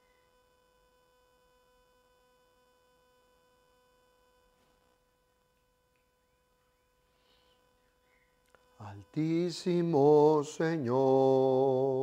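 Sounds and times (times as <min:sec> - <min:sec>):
faint electrical tone: 0:00.0 - 0:12.0.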